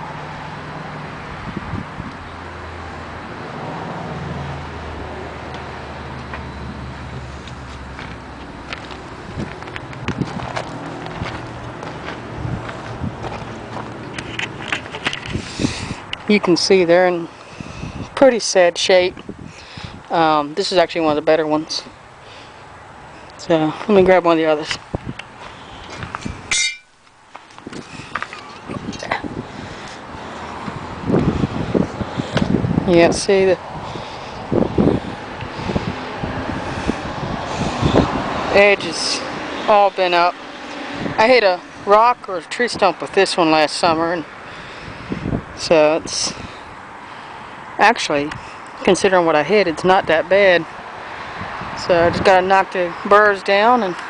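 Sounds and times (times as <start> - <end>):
high metallic clang: 26.5 - 27.0
metal blades knocking and clinking: 26.5 - 27.0.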